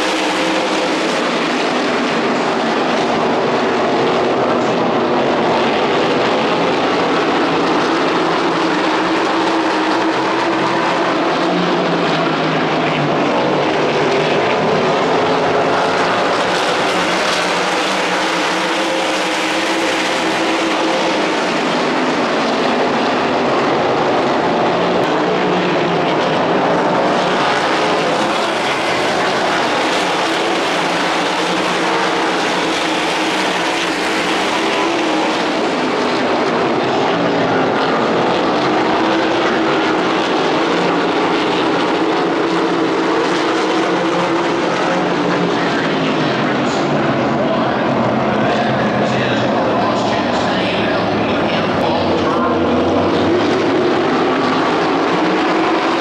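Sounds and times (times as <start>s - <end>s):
loud engine drone: 0.0s - 56.0s.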